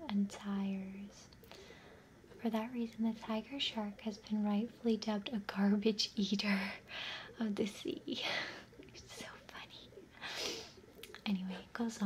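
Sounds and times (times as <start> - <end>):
woman whispering: 0.0 - 1.4, 2.3 - 10.2, 11.1 - 12.0.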